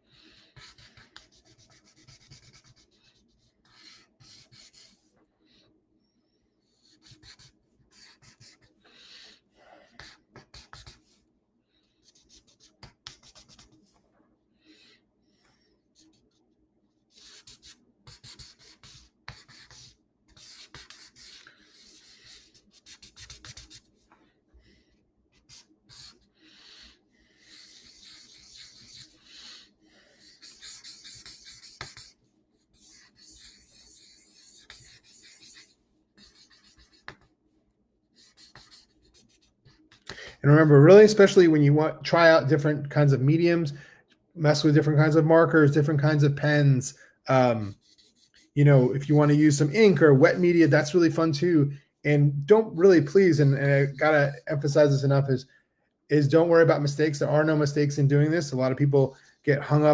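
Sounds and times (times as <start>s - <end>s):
pen scratching on paper: 0.1s - 5.1s, 6.6s - 11.2s, 11.9s - 13.8s, 17.1s - 24.0s, 25.3s - 37.3s, 38.2s - 40.0s, 47.7s - 48.6s.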